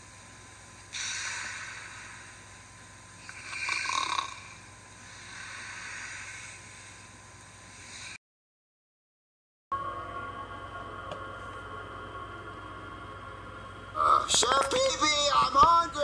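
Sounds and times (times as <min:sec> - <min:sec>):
faint steady hum: 0:00.0 - 0:08.2, 0:09.8 - 0:16.0
breathy hissing breaths: 0:00.8 - 0:08.2.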